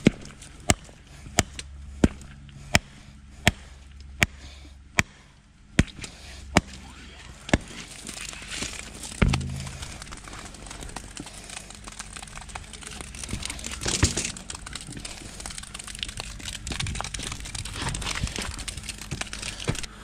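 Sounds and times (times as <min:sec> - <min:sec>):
faint low hum: 0:00.0 - 0:20.0.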